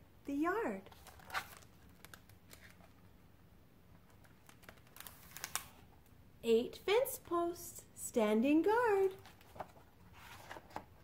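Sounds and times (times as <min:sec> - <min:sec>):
book page turning: 0:00.9 - 0:03.0, 0:04.0 - 0:05.9, 0:09.1 - 0:11.0.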